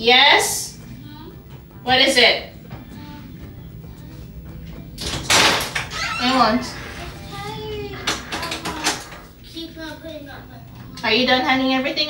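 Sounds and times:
clicks and knocks: 7.9s - 9.3s.

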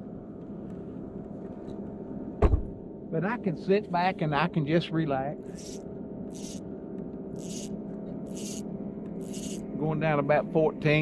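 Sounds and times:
boat motor humming: 5.4s - 11.0s.

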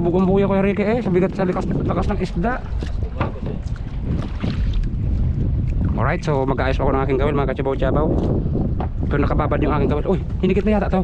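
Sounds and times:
sea water around boat: 0.0s - 11.0s
wind rumble on microphone: 0.0s - 11.0s.

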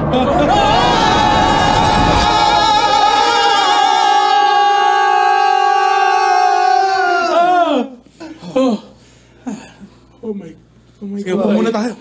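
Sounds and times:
person singing long high note: 0.0s - 4.7s.

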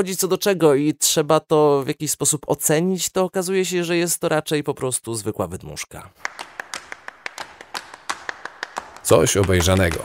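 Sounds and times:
rhythmic percussion taps: 6.2s - 10.0s.

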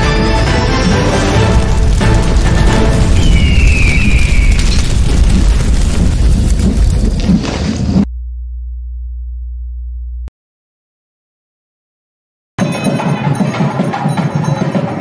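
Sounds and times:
deep explosive rumble: 1.2s - 10.3s.

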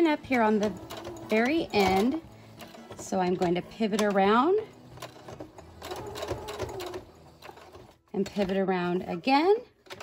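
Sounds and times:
sewing machine stitching: 0.0s - 10.0s.

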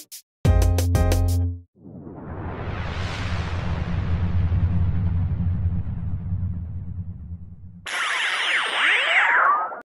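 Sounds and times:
rising tone: 1.8s - 9.9s
high falling whistle: 5.0s - 9.8s
synthesizer tones sweeping: 7.3s - 9.8s.

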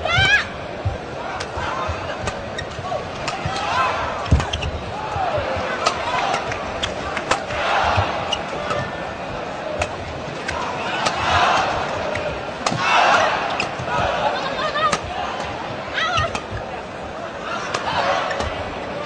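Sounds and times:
crowd shouting and cheering: 0.0s - 19.0s
racket striking shuttlecock: 5.8s - 7.6s.

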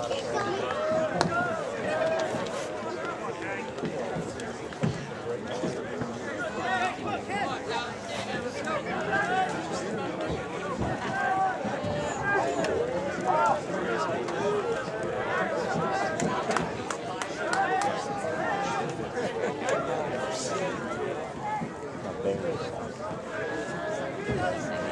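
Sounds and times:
crowd chatter: 0.0s - 24.9s.

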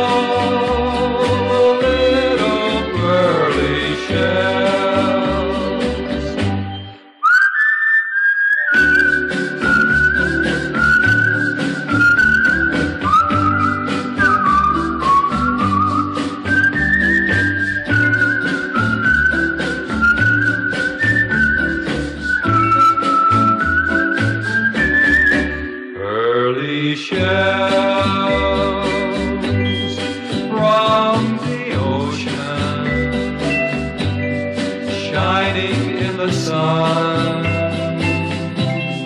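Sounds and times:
band with bass and beat: 0.0s - 6.7s, 8.8s - 25.7s, 27.1s - 39.0s
whistled melody: 1.6s - 26.1s, 27.5s - 39.0s.

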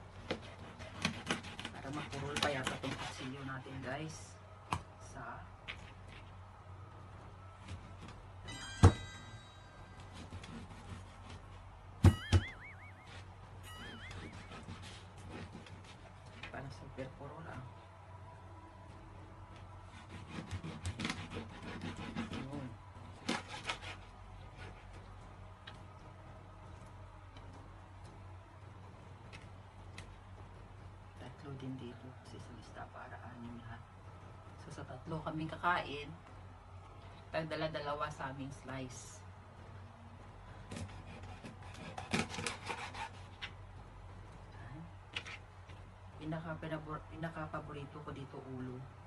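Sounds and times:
knife sawing through fish: 0.3s - 3.5s, 19.9s - 24.8s, 40.7s - 43.3s.

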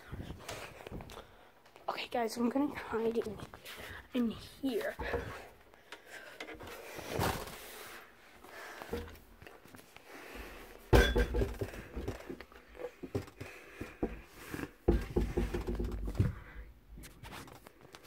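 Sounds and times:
bumps and knocks in cupboard: 10.9s - 12.4s, 13.0s - 16.6s.

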